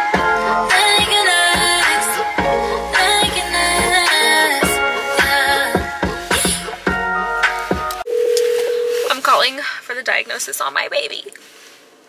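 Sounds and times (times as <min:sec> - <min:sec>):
telephone tone: 0:08.1 - 0:09.1.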